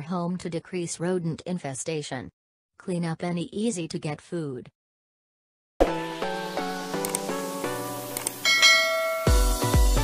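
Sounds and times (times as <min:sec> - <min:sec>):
electronic background music: 0:05.8 - 0:10.0
bell ding notification: 0:08.4 - 0:09.6
heavy kick drum beat: 0:09.2 - 0:10.0.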